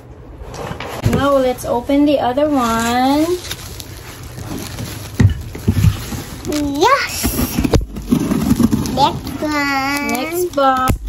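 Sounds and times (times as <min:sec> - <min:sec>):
bubble wrap crinkling: 0:01.2 - 0:11.0.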